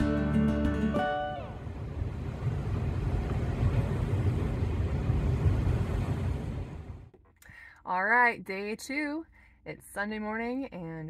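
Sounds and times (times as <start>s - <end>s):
background music: 0.0s - 1.6s
low rumbling aboard ferry: 0.5s - 7.3s.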